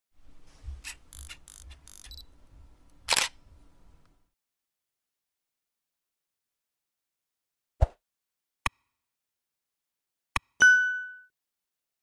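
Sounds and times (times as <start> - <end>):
short mechanical clicks: 0.8 - 2.2, 3.1 - 3.4
loud camera shutter click: 1.1 - 2.2, 3.1 - 3.4.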